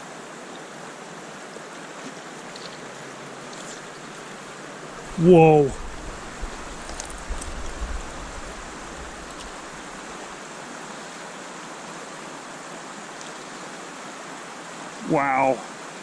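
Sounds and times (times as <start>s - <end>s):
stream water rushing: 0.0s - 16.0s.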